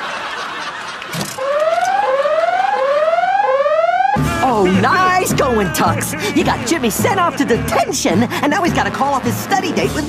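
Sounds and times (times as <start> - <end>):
whooping alarm siren: 1.4 - 5.2.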